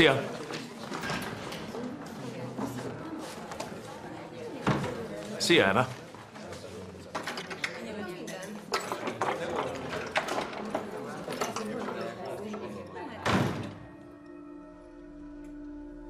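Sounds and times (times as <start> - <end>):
indistinct background voices: 0.0 - 14.8.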